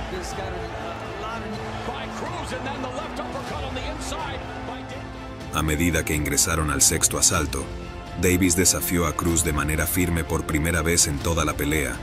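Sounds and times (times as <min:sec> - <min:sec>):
crowd noise: 0:00.0 - 0:05.4
background music: 0:00.0 - 0:12.0.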